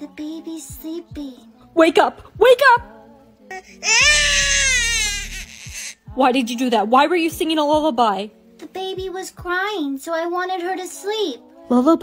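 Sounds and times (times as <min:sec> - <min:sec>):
baby crying: 0:03.5 - 0:06.0.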